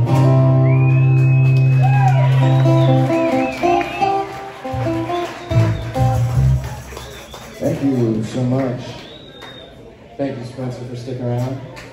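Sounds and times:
electric bass notes: 0.0 - 7.0.

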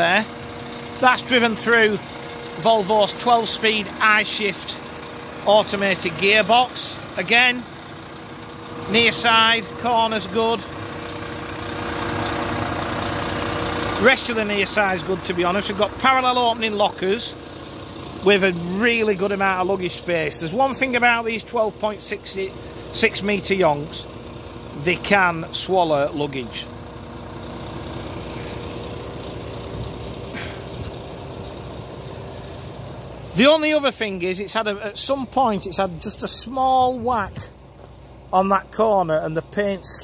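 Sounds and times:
diesel coach engine idling: 0.0 - 40.0.

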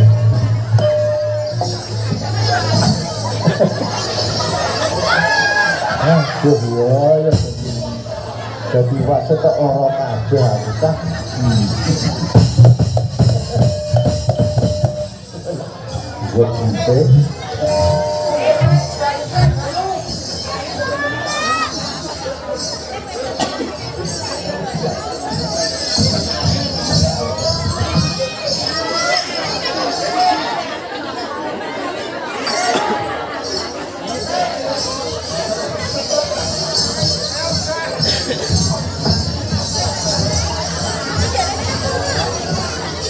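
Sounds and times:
gamelan music: 0.0 - 31.3, 32.4 - 43.0
people chattering: 0.0 - 43.0
held ringing note: 0.8 - 3.0, 17.6 - 19.5
drum strokes: 11.0 - 16.4.

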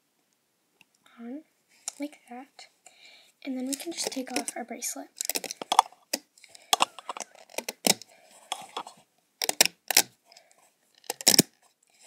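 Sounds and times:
rubber bands clicking and snapping: 5.2 - 8.8, 9.4 - 10.1, 11.0 - 11.5.

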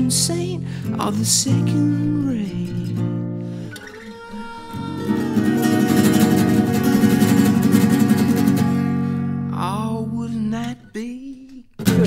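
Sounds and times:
rapidly strummed guitar: 0.0 - 12.0.

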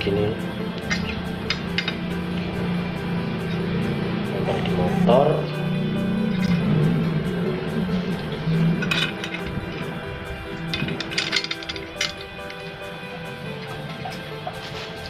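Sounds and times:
background music with sustained tones: 0.0 - 15.0
metal bracket clinking: 10.7 - 12.6.

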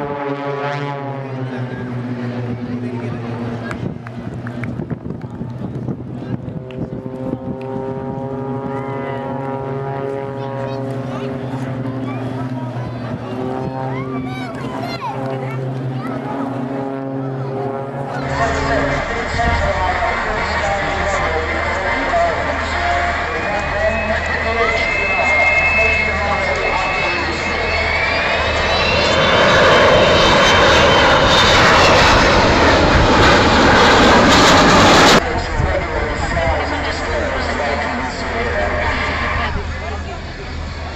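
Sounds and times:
aircraft engines droning: 0.0 - 40.9
faint voices of onlookers: 1.0 - 40.9.

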